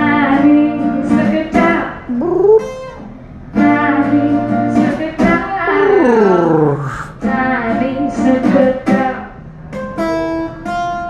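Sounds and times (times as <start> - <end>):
woman singing: 0.0 - 2.6, 3.6 - 9.4
acoustic guitar: 0.0 - 11.0.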